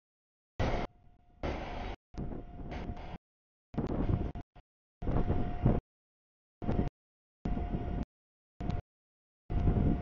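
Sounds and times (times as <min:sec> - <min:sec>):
outdoor rumbling: 0:00.6 - 0:03.2.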